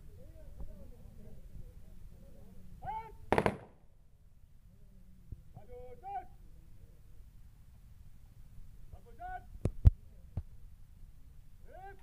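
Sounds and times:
rifle volley: 3.3s - 3.8s.

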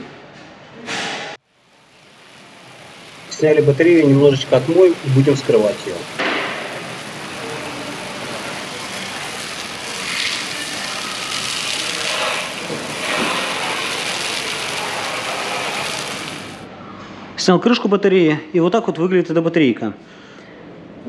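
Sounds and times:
hose water spraying on metal: 1.6s - 16.6s.

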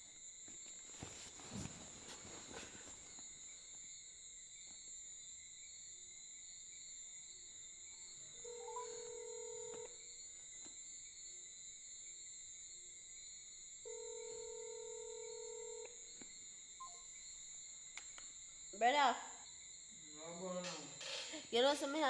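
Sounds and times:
crickets chirring: 0.0s - 22.0s
phone ringback tone: 8.4s - 9.9s, 13.9s - 15.8s.

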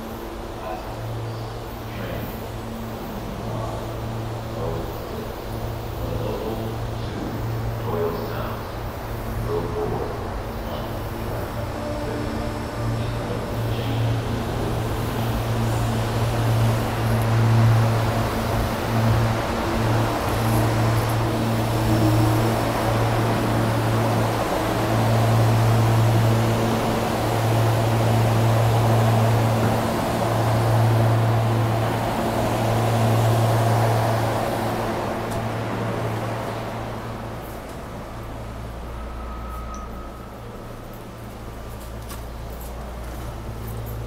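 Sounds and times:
electric train humming: 0.0s - 44.0s.

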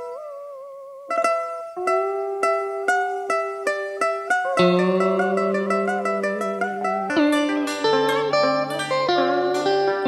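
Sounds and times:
plucked-string melody: 0.0s - 10.0s.

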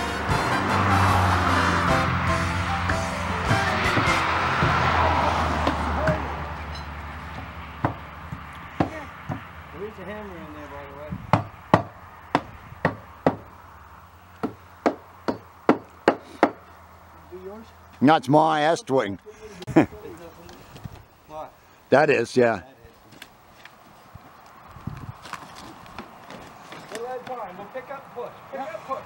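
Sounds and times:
background music: 0.0s - 6.0s
hammer blows on wooden wall: 7.4s - 9.5s, 11.3s - 13.5s, 14.4s - 16.6s.

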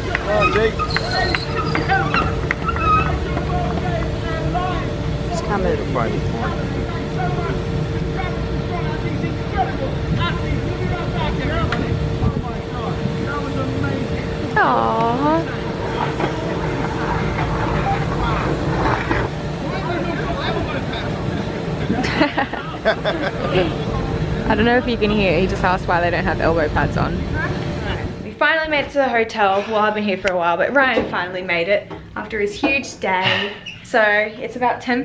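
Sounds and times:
group of people chattering: 0.0s - 30.7s
faint steady hum: 0.0s - 35.0s
people talking and calling out: 0.0s - 35.0s
steady low rumble: 1.5s - 29.2s
low rumble: 23.2s - 28.3s.

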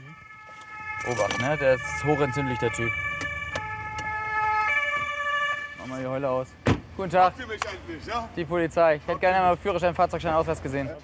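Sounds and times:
police car siren: 0.0s - 6.2s.

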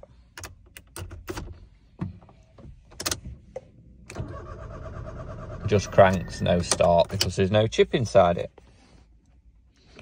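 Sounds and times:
key clicking in ignition lock: 0.4s - 1.5s.

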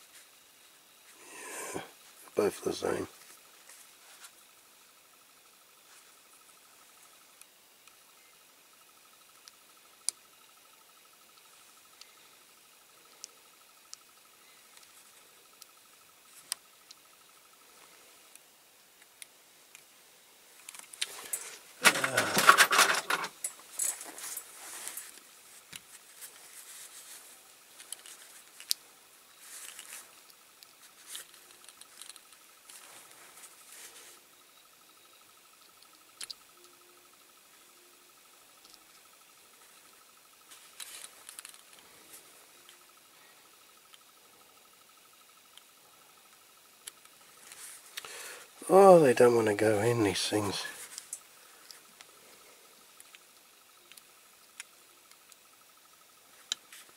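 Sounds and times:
faint high-pitched hum: 0.0s - 56.9s
plastic parts clicking: 20.6s - 23.6s
rustling scrape: 21.1s - 28.6s.

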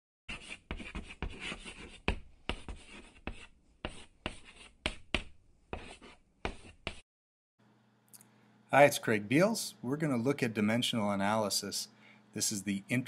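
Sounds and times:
chalk scratching on chalkboard: 0.3s - 7.0s
chalk tapping: 0.3s - 7.0s.

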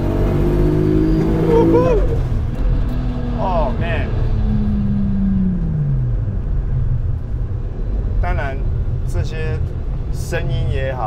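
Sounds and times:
car engine rumbling from inside cabin: 0.0s - 11.0s.

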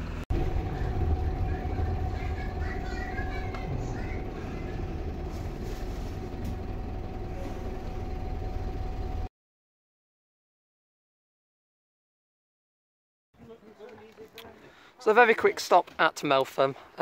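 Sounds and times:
bus engine rumble: 0.0s - 9.3s
steady whine: 0.0s - 9.3s.

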